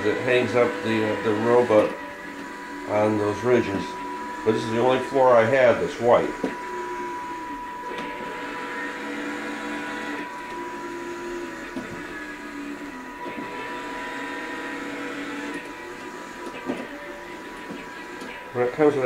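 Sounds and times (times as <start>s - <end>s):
robot drive motors whining: 0.0s - 19.0s.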